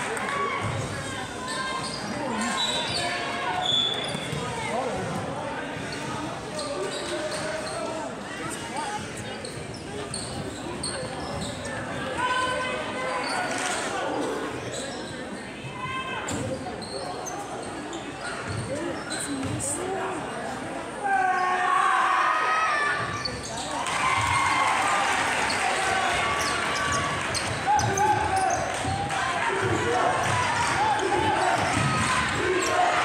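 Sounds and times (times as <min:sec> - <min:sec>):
spectators chattering and calling out: 0:00.0 - 0:33.0.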